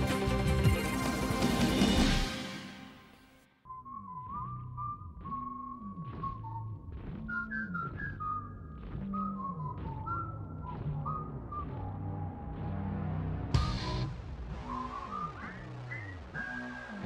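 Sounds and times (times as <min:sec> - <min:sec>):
whistled tune: 0:03.6 - 0:17.0
gliding bass line: 0:03.7 - 0:17.0.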